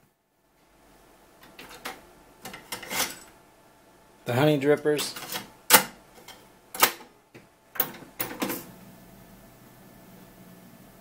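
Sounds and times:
cassette deck clicking and clattering: 5.0s - 8.6s.

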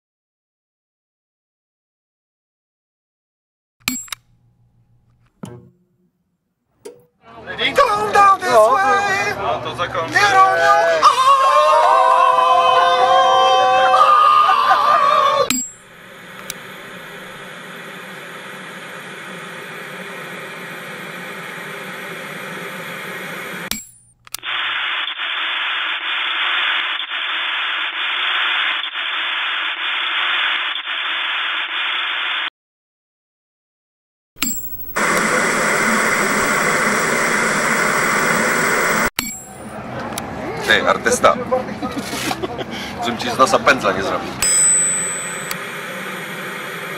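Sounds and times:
low electronic hum: 15.5s - 24.3s
static hiss: 16.0s - 23.7s, 34.8s - 39.1s.

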